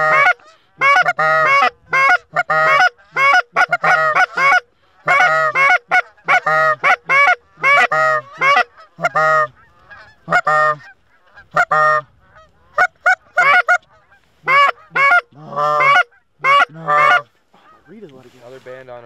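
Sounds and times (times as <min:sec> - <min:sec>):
goose honking: 0:00.0 - 0:18.4.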